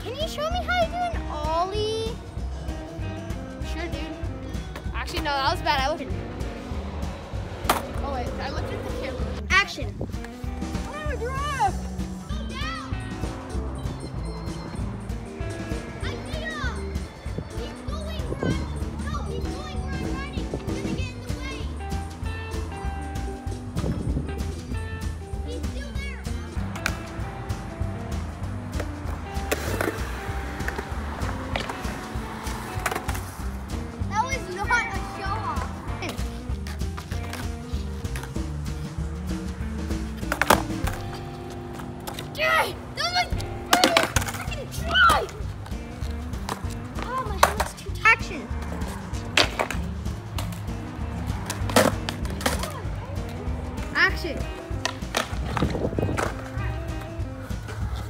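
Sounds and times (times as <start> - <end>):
music with steady beat: 0.0 - 58.0
skateboards rolling on concrete: 0.0 - 58.0
skateboards clacking on ground: 3.7 - 24.5, 25.4 - 58.0.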